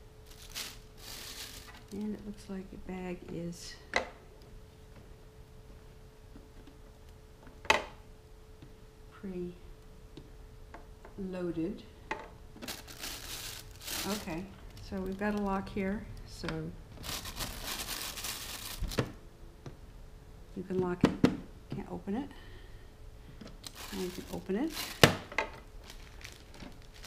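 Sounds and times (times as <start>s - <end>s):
plastic bag crinkling: 0.2s - 2.2s, 12.6s - 15.8s, 16.9s - 19.2s, 23.6s - 27.0s.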